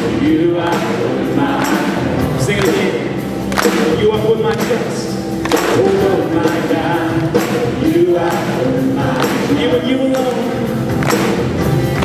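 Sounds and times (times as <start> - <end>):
voices singing held notes: 0.0 - 12.0.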